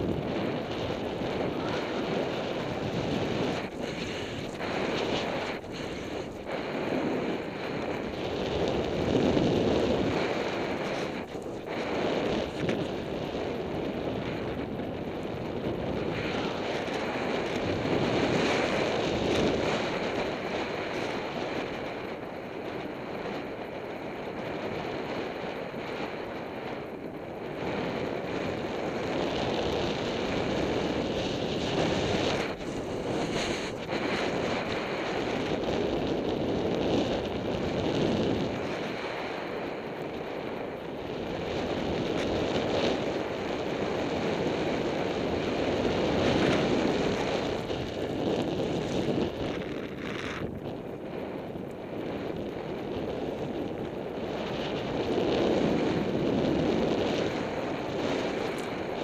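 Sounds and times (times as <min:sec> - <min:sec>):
snowboard carving on snow: 0:00.0 - 0:59.0
wind on microphone: 0:00.0 - 0:59.0.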